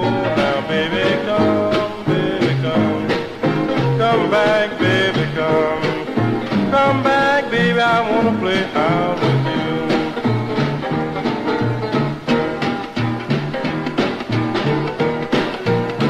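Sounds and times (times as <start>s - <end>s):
blues guitar playing: 0.0s - 16.0s
steady beat: 0.0s - 16.0s.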